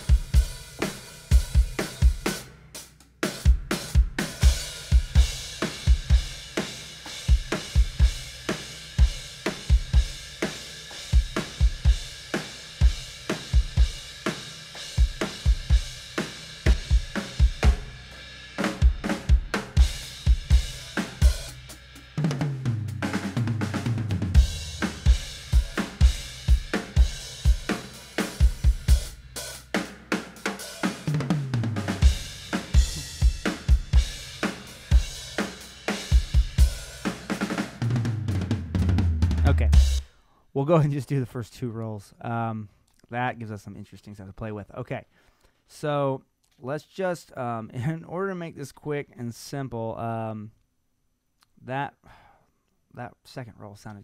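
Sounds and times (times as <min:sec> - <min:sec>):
cymbals: 0:00.0 - 0:37.8
snare drum: 0:22.2 - 0:29.1, 0:30.2 - 0:40.0.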